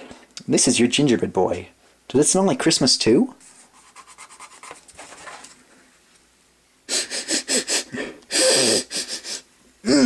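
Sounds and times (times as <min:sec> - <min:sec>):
fingernail scratching paper: 0:03.5 - 0:05.5.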